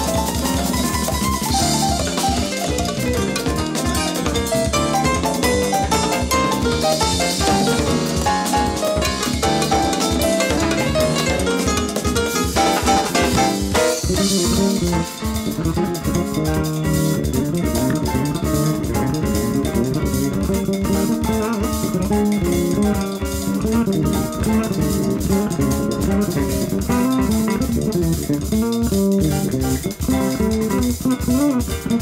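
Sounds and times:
busy drum kit: 0.0s - 32.0s
electric bass: 0.0s - 32.0s
guitar lines: 0.0s - 32.0s.

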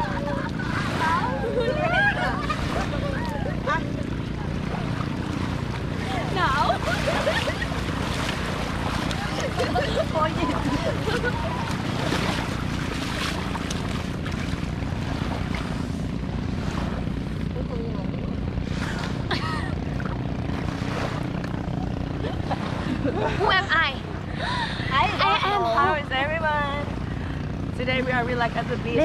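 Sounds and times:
women laughing and shrieking: 0.0s - 4.2s, 6.0s - 8.0s, 9.1s - 11.9s
splashing through water: 0.0s - 17.5s, 18.6s - 23.1s
steady low hum: 0.0s - 29.0s.

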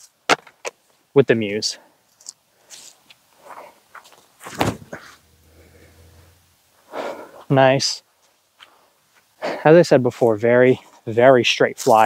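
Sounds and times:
foot thump: 4.4s - 6.3s.

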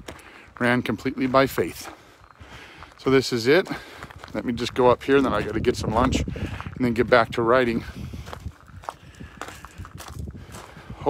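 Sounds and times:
footsteps scuffing on ground: 0.0s - 11.0s.

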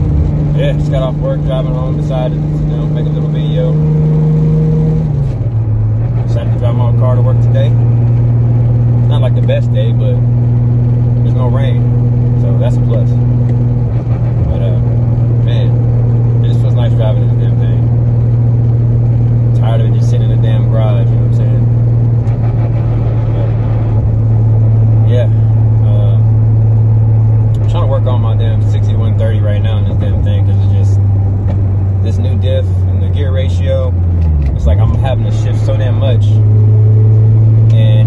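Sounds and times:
car engine droning in cabin: 0.0s - 38.0s.

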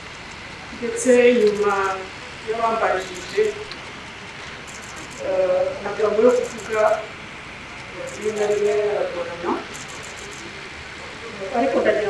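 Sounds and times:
steady background hiss: 0.0s - 12.0s
woman speaking into microphone: 0.8s - 3.7s, 5.3s - 7.1s, 8.0s - 9.7s, 11.4s - 12.0s.

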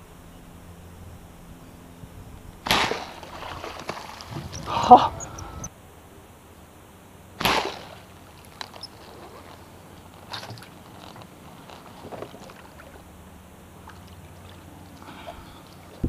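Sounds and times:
bow string snap: 7.4s - 7.9s.

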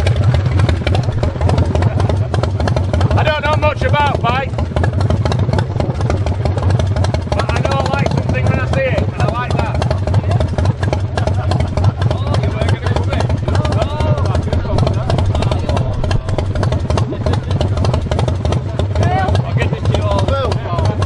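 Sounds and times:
motorcycle engine idling: 0.0s - 21.0s
people talking: 3.1s - 4.6s, 7.3s - 21.0s.

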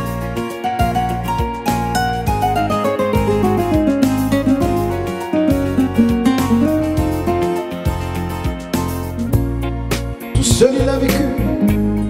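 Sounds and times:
electronic keyboard melody: 0.0s - 12.0s
plucked guitar-like accompaniment: 0.0s - 12.0s.

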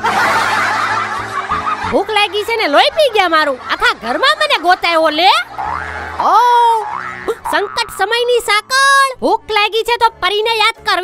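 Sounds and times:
breathy laughter: 0.0s - 2.0s
faint background music: 6.2s - 11.0s.

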